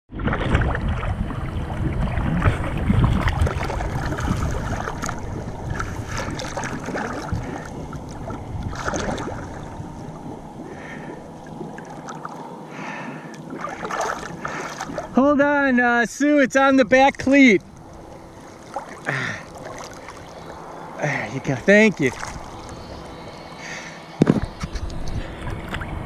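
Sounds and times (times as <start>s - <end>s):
wind on microphone: 0.1s - 11.8s, 21.8s - 26.0s
small splashes: 0.1s - 15.2s, 17.2s - 25.9s
water lapping and sloshing: 0.1s - 26.0s.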